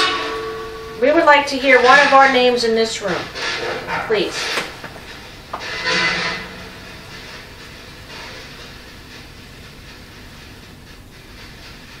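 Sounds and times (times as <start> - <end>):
high gain hiss: 0.0 - 12.0.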